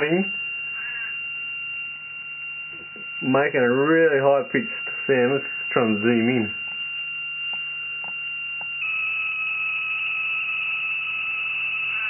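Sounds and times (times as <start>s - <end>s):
high-pitched tone: 2.5s - 12.0s.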